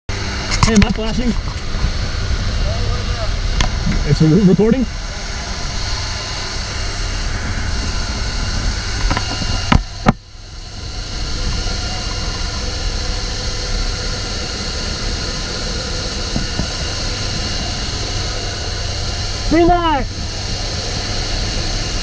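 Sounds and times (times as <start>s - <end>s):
aircraft engine noise: 0.1s - 22.0s
wind rushing: 1.4s - 13.1s.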